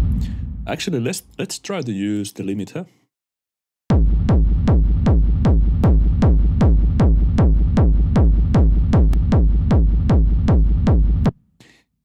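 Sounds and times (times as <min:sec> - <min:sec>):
distorted kick drum with reverb: 0:00.0 - 0:00.8, 0:03.9 - 0:11.3.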